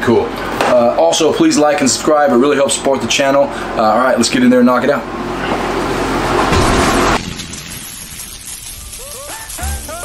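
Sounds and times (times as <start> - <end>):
loud rushing noise: 6.2 - 8.6.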